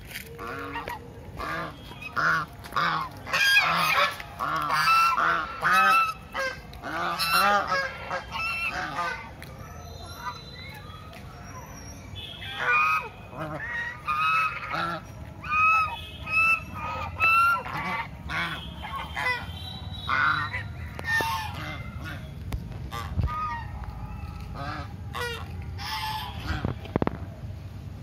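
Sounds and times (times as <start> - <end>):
geese honking: 0.1 - 11.1, 12.2 - 27.0.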